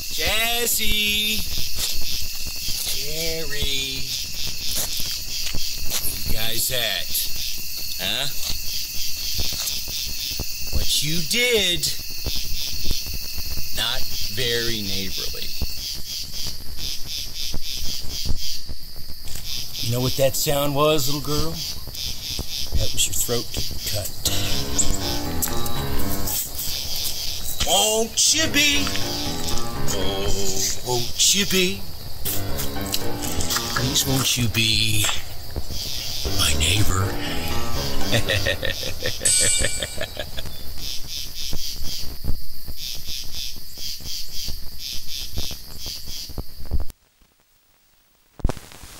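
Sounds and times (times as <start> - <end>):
insects chirping: 0.0 - 46.8
rhythmic high chirping: 24.2 - 40.4.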